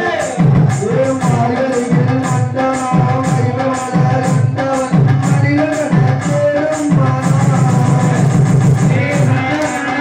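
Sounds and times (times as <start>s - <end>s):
devotional music with voices: 0.0s - 10.0s.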